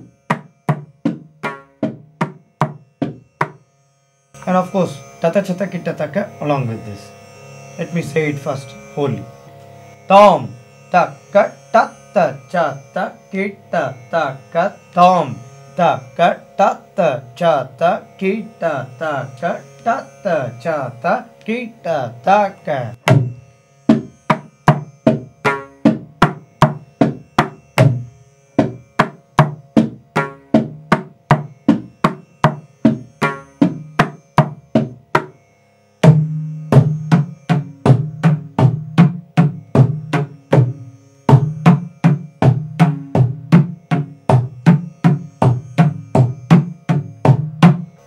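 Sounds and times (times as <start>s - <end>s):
hand drum strokes: 0.0s - 3.6s, 22.7s - 35.4s, 36.0s - 48.0s.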